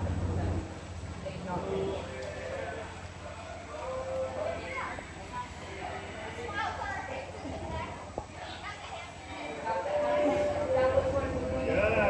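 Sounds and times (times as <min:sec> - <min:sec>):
steady low rumble: 0:00.0 - 0:08.4.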